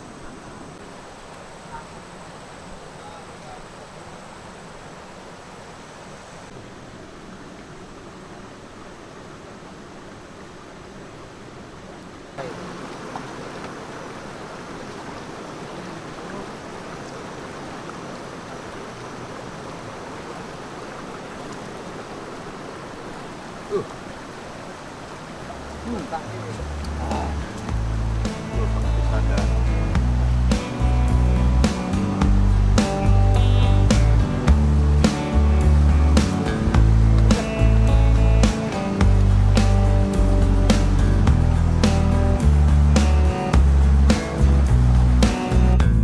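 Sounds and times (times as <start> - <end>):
river rushing over rocks: 0.0 - 46.0.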